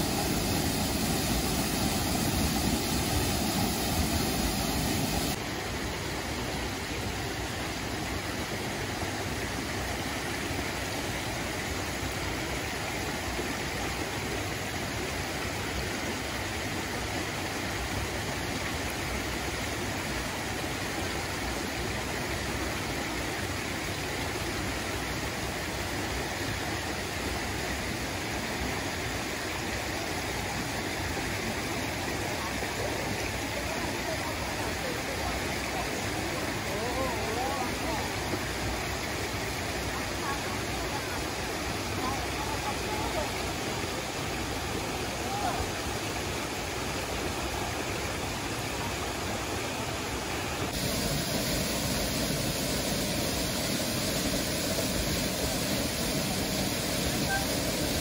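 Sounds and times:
stream rushing over rocks: 0.0 - 58.0
waterfall pouring into pool: 0.0 - 58.0.

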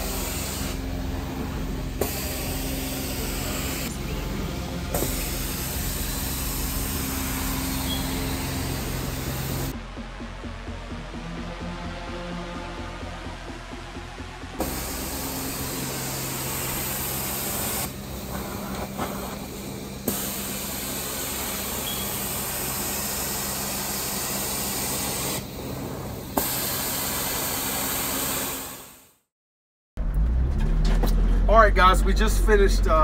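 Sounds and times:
hiss of spray and suction: 0.0 - 9.7, 14.6 - 29.0
machine humming: 0.0 - 28.8.

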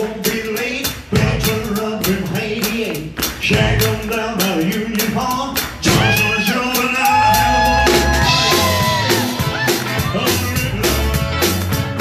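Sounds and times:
man singing: 0.0 - 11.7
drums driving beat: 0.0 - 12.0
rock and roll band playing: 0.0 - 12.0.

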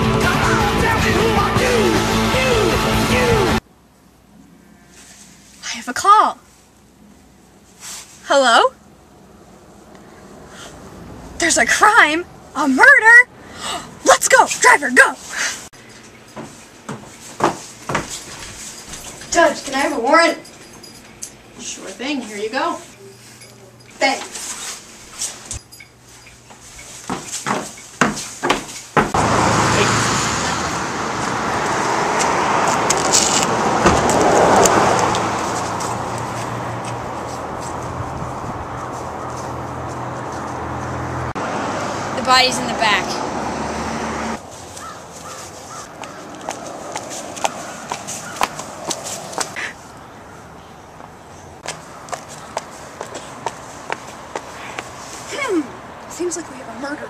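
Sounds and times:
loud steady outdoor rush: 0.0 - 6.4, 29.0 - 57.0
high heels clicking on asphalt: 16.2 - 19.0, 26.8 - 29.2, 31.6 - 41.3, 44.6 - 49.6, 51.0 - 55.3.

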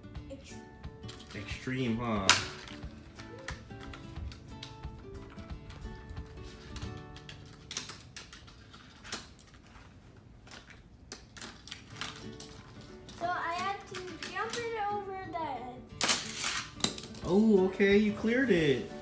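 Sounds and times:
plastic toy track clicks and clatter: 10.4 - 14.8.

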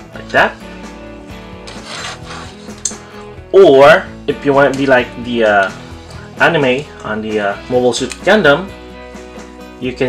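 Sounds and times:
plastic rubbing scrape: 1.7 - 2.9.

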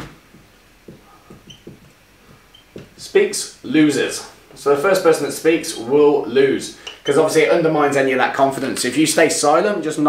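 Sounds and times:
marker tapping on whiteboard: 0.0 - 3.0
marker squeak: 1.1 - 2.9, 6.8 - 7.2.

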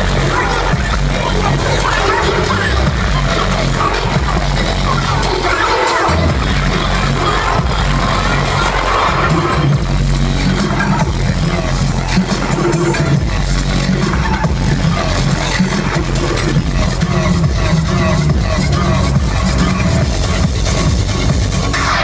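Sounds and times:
dubstep music over sound system: 0.0 - 22.0.

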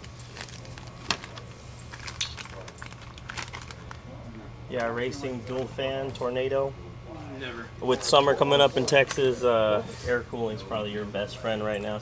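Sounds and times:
plastic bags crinkling: 0.0 - 4.1.

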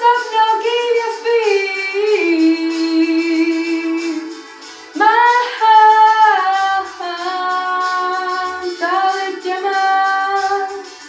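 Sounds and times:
girl singing: 0.0 - 4.4, 5.0 - 10.9
soft backing track: 0.0 - 11.0.

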